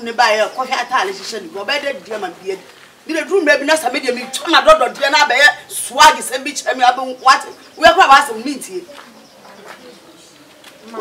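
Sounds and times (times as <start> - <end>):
woman speaking: 0.0 - 9.0.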